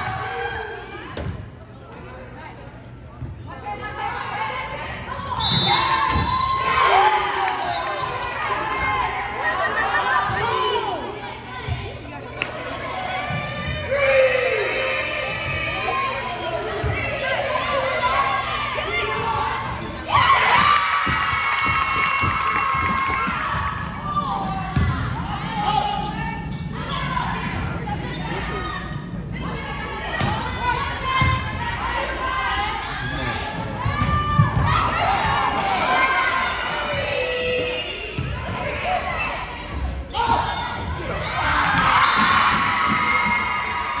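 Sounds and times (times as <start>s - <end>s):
teammates cheering: 20.1s - 24.3s.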